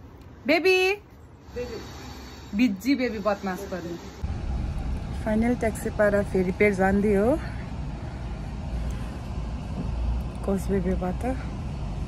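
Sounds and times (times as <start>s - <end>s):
woman's voice: 0.4s - 1.8s, 2.5s - 4.1s, 5.2s - 7.6s, 10.4s - 11.5s
car engine and road noise: 3.7s - 12.0s.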